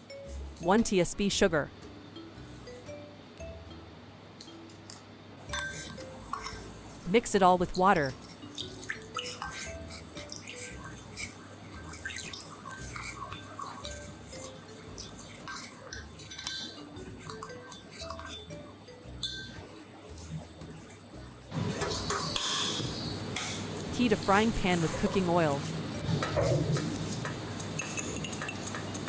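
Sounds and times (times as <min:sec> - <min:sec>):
light background music: 0:00.0 - 0:29.0
spoon clinking in ceramic bowl: 0:05.5 - 0:06.7, 0:08.2 - 0:11.3, 0:12.0 - 0:18.5, 0:19.2 - 0:19.6, 0:27.8 - 0:29.0
water pouring: 0:11.7 - 0:16.5.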